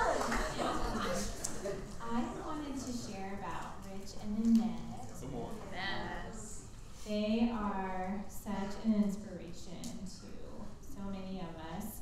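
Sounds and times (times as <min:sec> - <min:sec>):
woman speaking into a microphone: 0:02.0 - 0:12.0.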